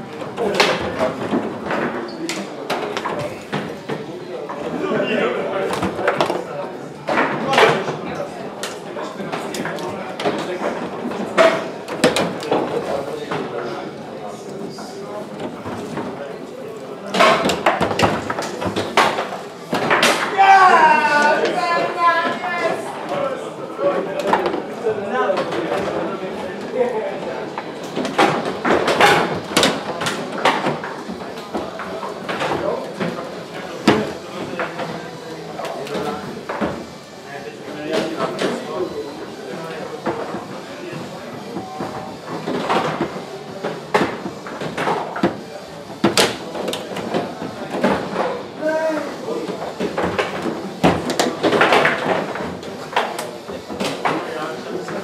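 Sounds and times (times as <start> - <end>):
foosball ball clacking: 0.2 - 4.8, 5.4 - 13.6, 17.0 - 23.2, 27.4 - 35.0, 39.6 - 48.5, 49.1 - 55.0
foosball rods knocking: 0.2 - 13.8, 17.0 - 23.1, 27.4 - 35.1, 39.4 - 55.0.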